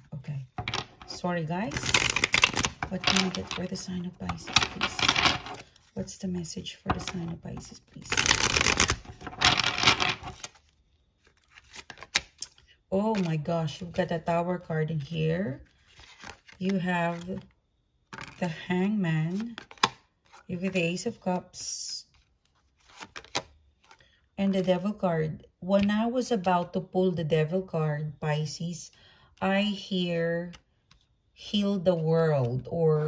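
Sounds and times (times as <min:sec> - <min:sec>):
cards being shuffled: 0:00.6 - 0:06.0, 0:07.0 - 0:13.4, 0:15.7 - 0:17.5, 0:22.1 - 0:24.0.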